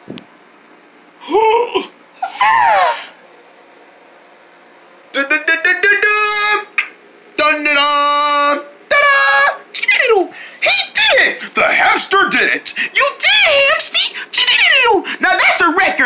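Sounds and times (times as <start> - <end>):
high voice squealing and crying: 1.2 - 3.2.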